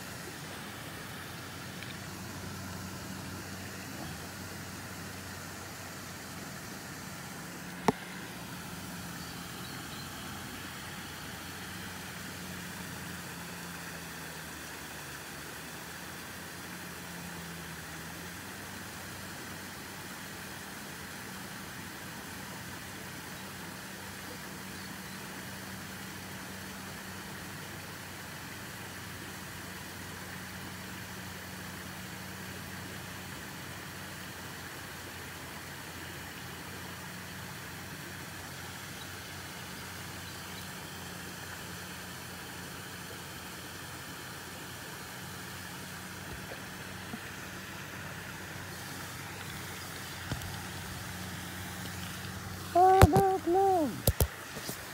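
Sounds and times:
constant hiss: 0.0s - 54.9s
low motor hum: 0.0s - 54.9s.

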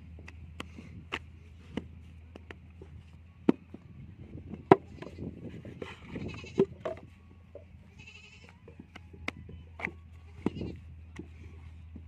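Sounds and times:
goat bleating: 5.9s - 6.8s, 7.8s - 8.6s, 10.3s - 10.8s.

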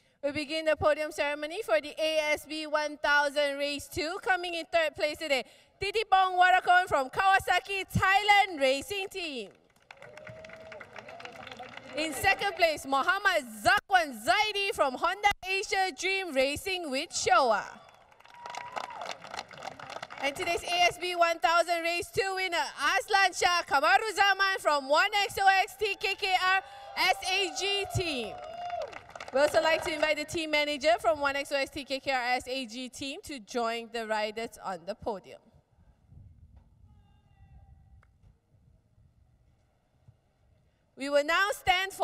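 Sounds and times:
light applause: 9.7s - 12.6s, 17.8s - 20.3s, 27.7s - 30.0s.

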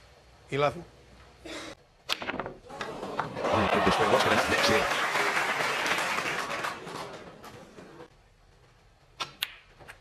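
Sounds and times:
audience applause: 2.7s - 8.1s.

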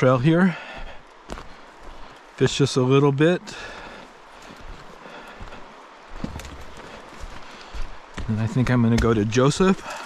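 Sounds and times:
footsteps on dirt trail: 0.0s - 2.6s, 3.4s - 10.0s
faint steady hiss: 0.0s - 10.0s.

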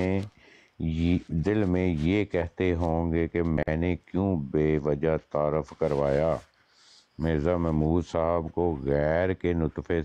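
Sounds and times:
man speaking: 0.0s - 6.5s, 7.2s - 10.0s
faint hiss: 0.0s - 10.0s.

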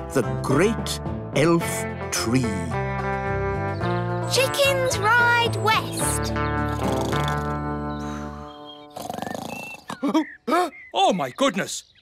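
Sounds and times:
cartoon snore rattle: 6.7s - 7.6s, 8.9s - 9.9s.

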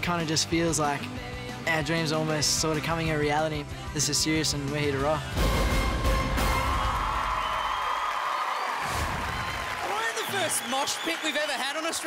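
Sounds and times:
rock band playing: 0.0s - 7.3s.

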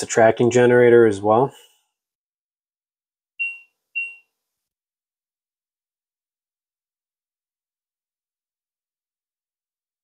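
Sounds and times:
short high electronic beeps: 3.4s - 4.3s.

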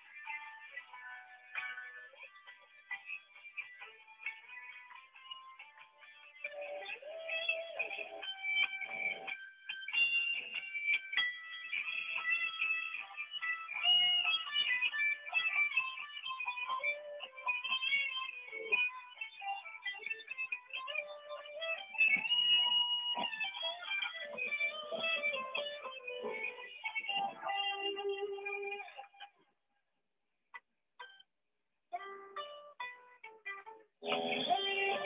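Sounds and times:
electric guitar melody: 0.0s - 29.3s, 31.9s - 35.0s.

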